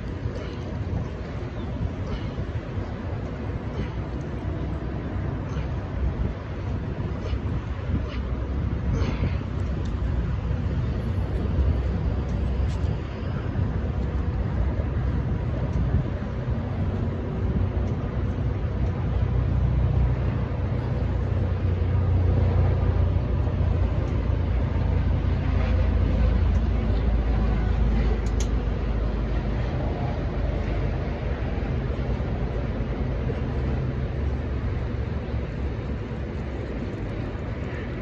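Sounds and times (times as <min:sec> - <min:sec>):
low rumble of road traffic: 0:00.0 - 0:38.0.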